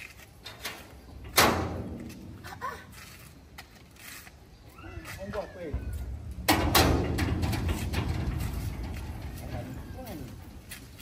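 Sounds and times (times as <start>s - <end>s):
metal gate banging: 0.4s - 2.4s, 5.6s - 10.7s.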